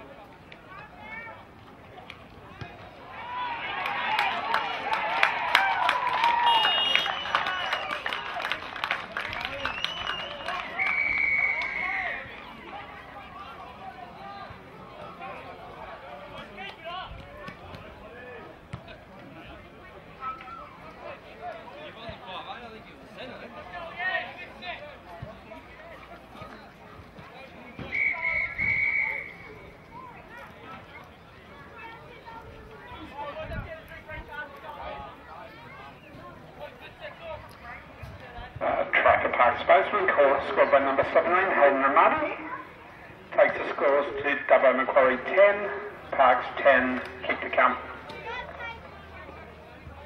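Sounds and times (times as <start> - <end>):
commentator speaking: 38.6 - 42.5, 43.3 - 47.9.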